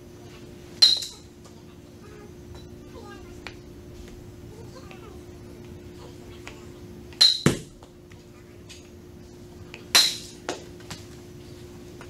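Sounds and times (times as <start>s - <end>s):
faint steady hum: 0.0s - 12.0s
metallic clink ringing: 0.8s - 1.2s, 7.2s - 7.6s.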